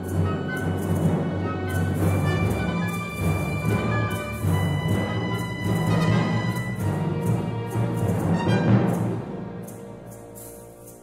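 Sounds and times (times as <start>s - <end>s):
orchestra playing: 0.0s - 11.0s.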